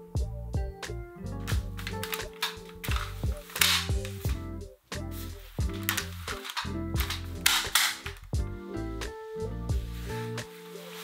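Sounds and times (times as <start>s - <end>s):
soft background music: 0.0s - 11.0s
crib latch clicking: 1.4s - 4.4s, 5.7s - 8.4s
crib rail sliding rattle: 5.8s - 8.3s.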